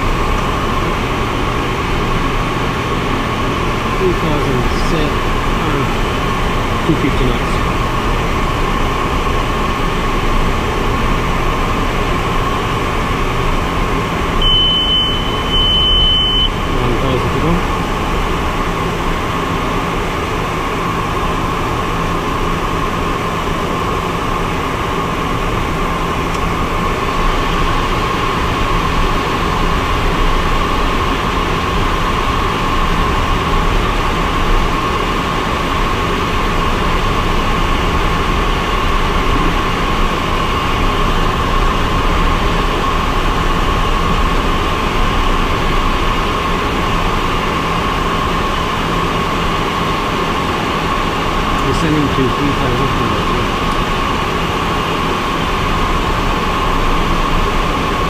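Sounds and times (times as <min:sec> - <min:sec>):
aircraft engine and airflow drone: 0:00.0 - 0:58.0
short high beeps: 0:14.4 - 0:16.6.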